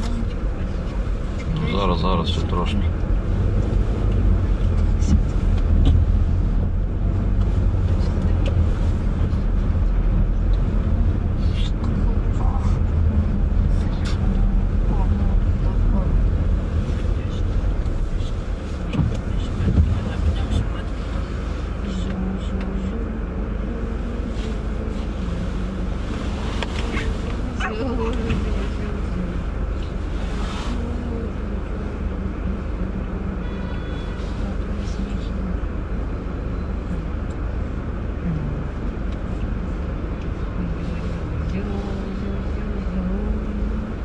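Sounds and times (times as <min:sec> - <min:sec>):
engine and tyres rumbling: 0:00.0 - 0:44.0.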